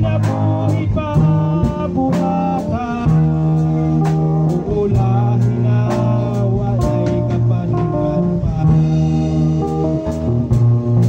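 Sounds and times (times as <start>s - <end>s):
bass notes: 0.0s - 11.0s
worship music with guitar: 0.0s - 11.0s.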